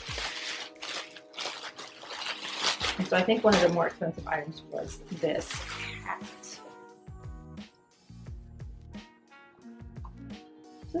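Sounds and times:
plastic bag crinkling: 0:00.0 - 0:06.6.

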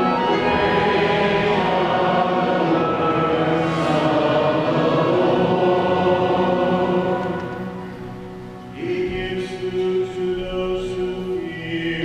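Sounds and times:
choir chanting in reverberant hall: 0:00.0 - 0:12.0.

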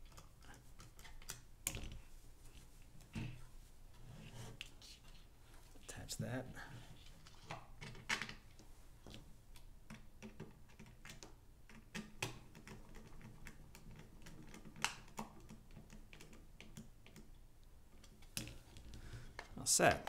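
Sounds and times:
plastic parts clicking and tapping: 0:18.0 - 0:20.0.

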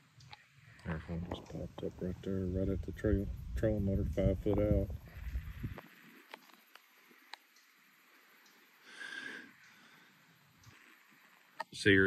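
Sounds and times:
faint clicks: 0:00.2 - 0:01.4, 0:05.2 - 0:08.8, 0:09.5 - 0:09.9, 0:10.5 - 0:11.8.

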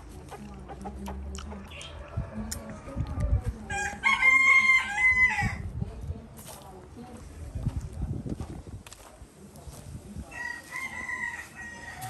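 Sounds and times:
rooster crowing: 0:03.7 - 0:05.6, 0:10.4 - 0:12.0.

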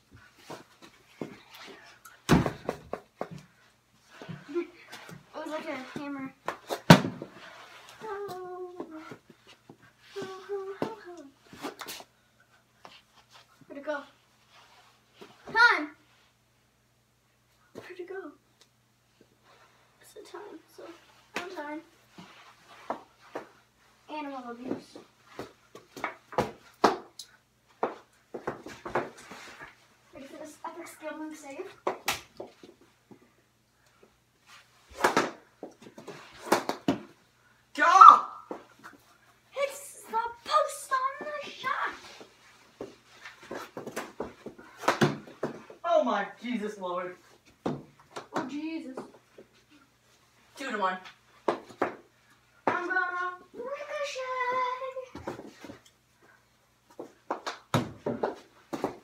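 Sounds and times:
hockey sticks knocking ball: 0:24.6 - 0:27.2, 0:34.9 - 0:37.1, 0:42.8 - 0:45.8, 0:51.4 - 0:52.0, 0:56.9 - 0:59.0.

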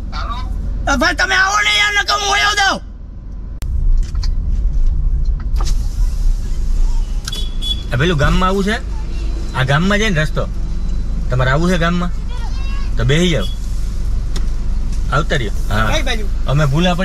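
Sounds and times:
car engine and road noise: 0:00.0 - 0:17.0
man speaking: 0:07.9 - 0:10.5, 0:11.3 - 0:13.6, 0:15.1 - 0:17.0.

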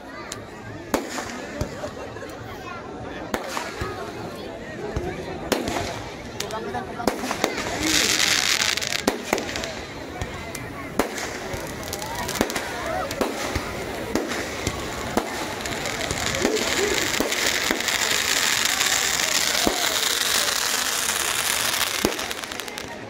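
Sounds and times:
fireworks bangs and cracks: 0:00.2 - 0:02.4, 0:03.1 - 0:23.0
loud hissing burst: 0:11.1 - 0:22.8.

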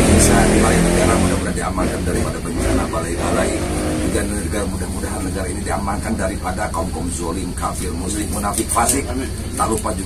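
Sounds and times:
man leading a prayer: 0:00.0 - 0:10.0
steady low rumble: 0:00.0 - 0:10.0.

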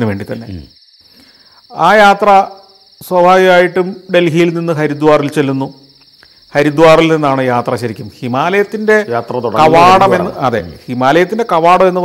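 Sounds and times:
crickets trilling: 0:00.0 - 0:12.0
man talking: 0:06.6 - 0:12.0.

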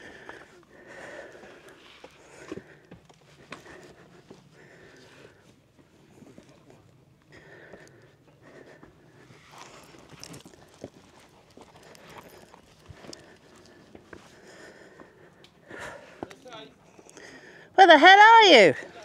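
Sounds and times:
faint breathing: 0:00.0 - 0:06.7, 0:07.3 - 0:10.9, 0:11.6 - 0:17.8
loud shouted call: 0:17.8 - 0:18.8.

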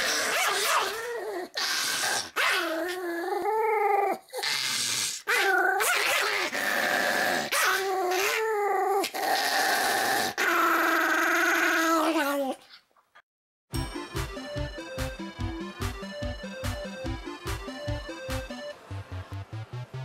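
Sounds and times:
small dog growling: 0:00.0 - 0:12.8.

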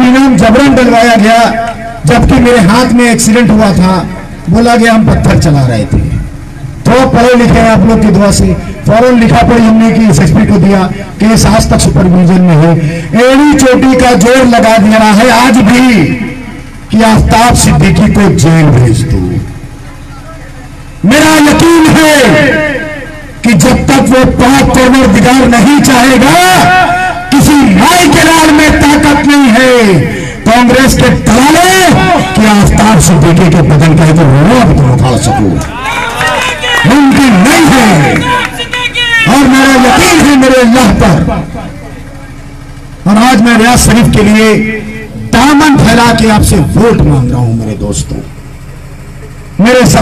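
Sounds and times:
man speaking through loudspeakers: 0:00.0 - 0:35.8, 0:36.4 - 0:48.4, 0:49.6 - 0:50.0
man's amplified voice: 0:00.0 - 0:48.6, 0:49.5 - 0:50.0.

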